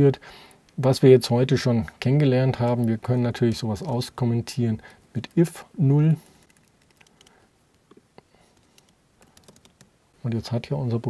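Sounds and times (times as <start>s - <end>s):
computer keyboard typing: 6.4s - 7.4s, 8.4s - 9.9s.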